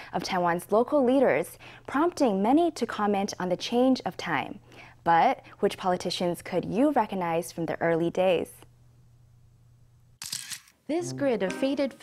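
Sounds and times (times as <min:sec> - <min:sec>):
camera shutter clicks: 0:10.2 - 0:10.8.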